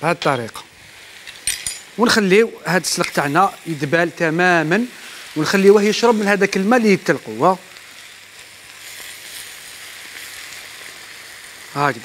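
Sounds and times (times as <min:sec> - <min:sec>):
food sizzling in frying pans: 0:00.0 - 0:12.0.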